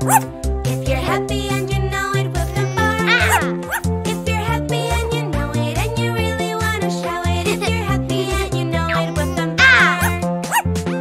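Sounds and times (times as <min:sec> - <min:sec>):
cartoon puppy barking: 0:00.0 - 0:00.3, 0:02.5 - 0:03.9, 0:08.9 - 0:10.7
children's song music: 0:00.0 - 0:11.0.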